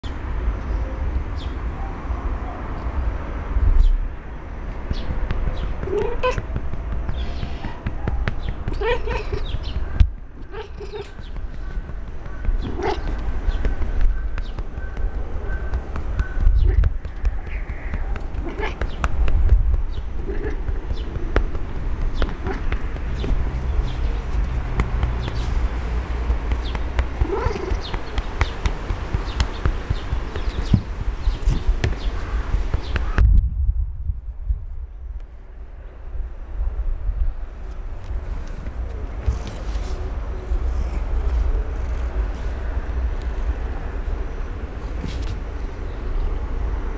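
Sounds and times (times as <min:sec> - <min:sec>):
hand patting cat: 0:04.8 - 0:33.2
cat trembling vocalisations: 0:05.8 - 0:06.6, 0:07.7 - 0:09.6, 0:10.4 - 0:11.7, 0:15.8 - 0:30.6.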